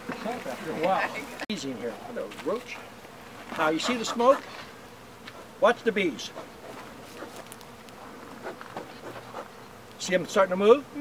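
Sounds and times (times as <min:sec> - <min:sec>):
bees buzzing faintly: 0:00.0 - 0:11.0.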